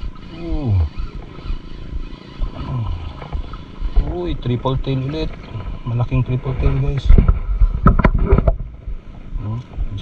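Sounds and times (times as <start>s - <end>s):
wind: 0.0s - 10.0s
microphone handling rumble: 0.8s - 10.0s.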